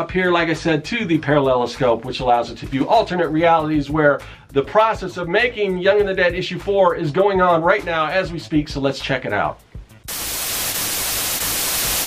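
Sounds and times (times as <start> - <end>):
television static hiss: 10.1 - 12.0.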